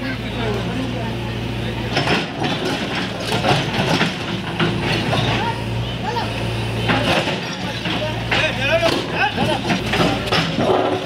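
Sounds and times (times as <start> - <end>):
diesel engine running: 0.0 - 11.0
people talking loudly: 0.0 - 11.0.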